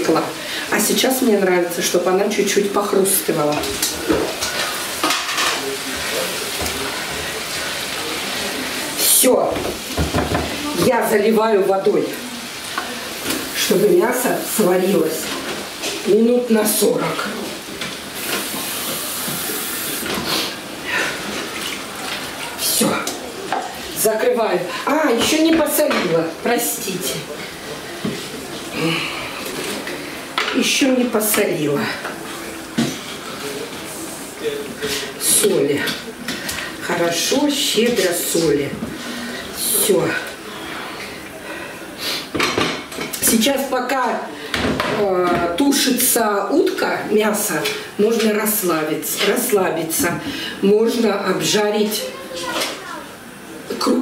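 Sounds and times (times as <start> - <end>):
water pouring into hot pan: 3.3 - 22.6
meat sizzling and hissing: 3.6 - 11.2, 12.1 - 22.5, 40.4 - 43.1.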